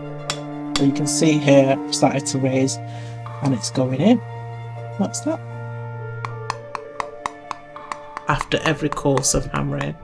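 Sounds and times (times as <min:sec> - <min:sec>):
background music: 0:00.0 - 0:10.0
hammer striking metal dish: 0:06.2 - 0:10.0.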